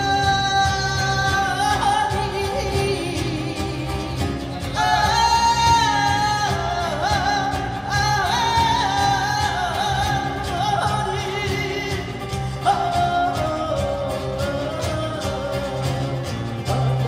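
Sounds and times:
woman singing flamenco-style: 0.0s - 17.0s.

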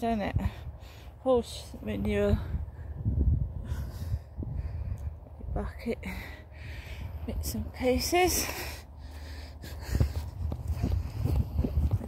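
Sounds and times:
low microphone rumble: 1.6s - 12.0s.

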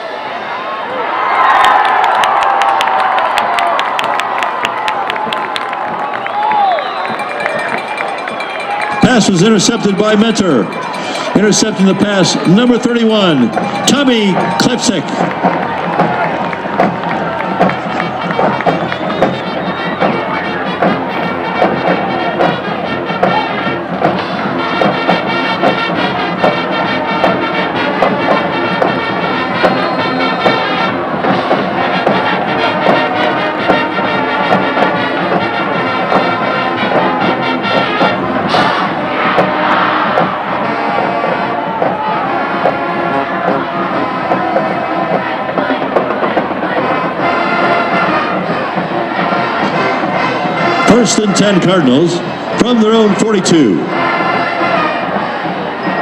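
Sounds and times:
stadium crowd cheering: 0.0s - 56.0s
brass band music: 6.8s - 56.0s.

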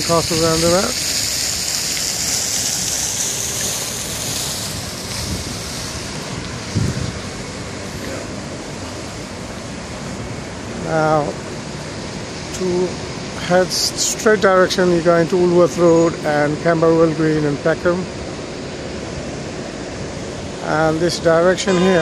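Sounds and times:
wind rumbling on microphone: 0.0s - 10.6s
high hiss: 0.0s - 11.4s
road traffic: 0.0s - 22.0s.

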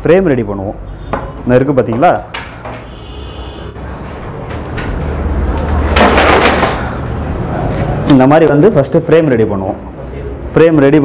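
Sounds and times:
cane furniture frame knocks: 5.7s - 6.9s.

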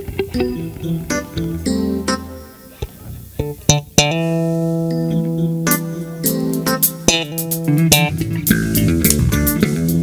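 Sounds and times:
live jazz band playing: 0.0s - 10.0s.

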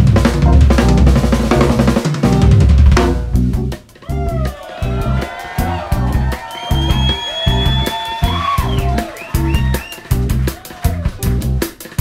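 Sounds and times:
pulsing bass: 0.0s - 11.6s
drum kit with cymbals: 0.0s - 12.0s.

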